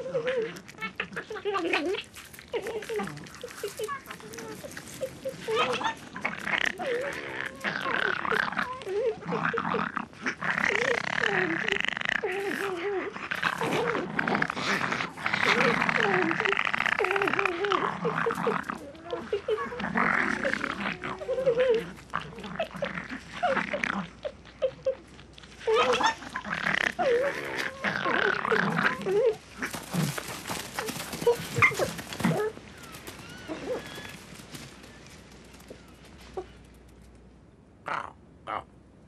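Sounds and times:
wild animal calls: 0.0 - 36.7
rough noisy animal sounds: 0.0 - 37.2, 37.8 - 38.8.

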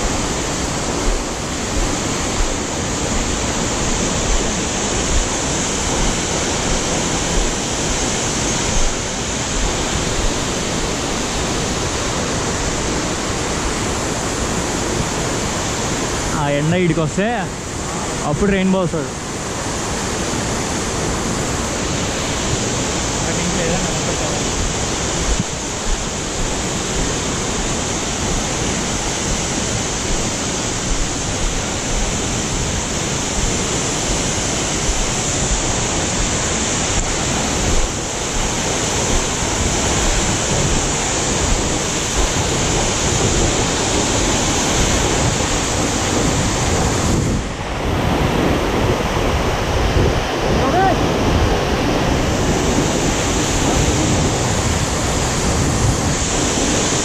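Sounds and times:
waterfall rushing water: 0.0 - 57.0.

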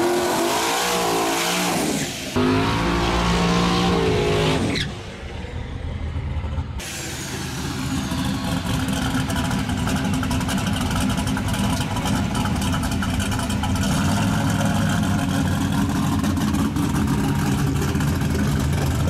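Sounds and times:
truck engine revving hard: 0.0 - 5.0.

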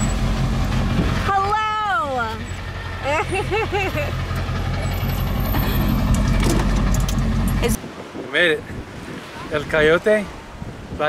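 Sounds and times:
truck engine rumble: 0.0 - 7.8
sharp clicks and knocks: 5.5 - 7.6.

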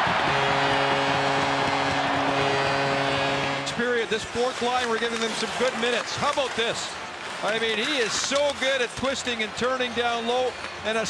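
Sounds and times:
arena goal horn: 0.0 - 6.1
crowd cheering: 0.0 - 11.0.

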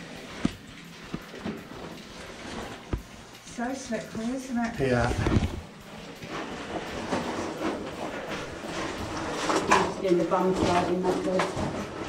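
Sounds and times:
footsteps crunching on gravel: 0.4 - 2.0.

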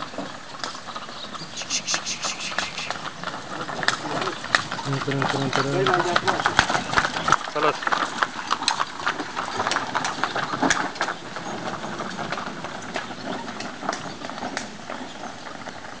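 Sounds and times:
hooves clopping: 0.0 - 16.0
cart knocking: 2.1 - 16.0.

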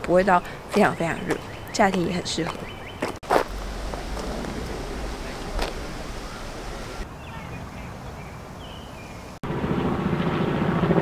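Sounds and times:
faint outdoor ambience: 0.0 - 10.2
helicopter rotor beating: 3.2 - 7.1.

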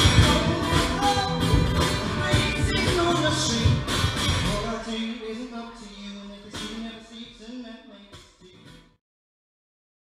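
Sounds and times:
guitar strum: 0.0 - 5.9
acoustic guitar and vocal song: 0.0 - 8.9.

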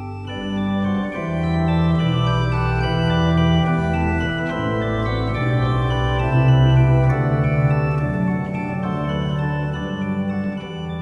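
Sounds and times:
organ playing slow chords: 0.0 - 11.0.

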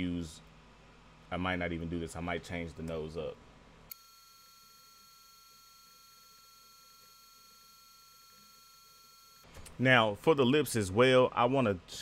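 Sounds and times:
faint background hiss: 0.0 - 3.9.

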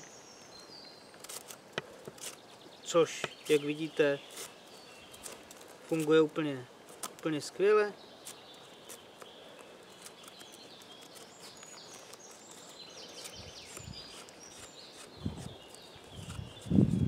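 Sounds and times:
birds chirping: 0.0 - 17.0
knife shaving wood: 1.2 - 7.4, 8.2 - 17.0.

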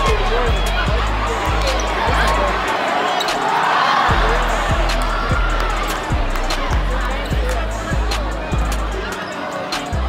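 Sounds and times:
music with heavy bass beat: 0.0 - 2.8, 4.1 - 9.2
crowd noise: 0.0 - 10.0.

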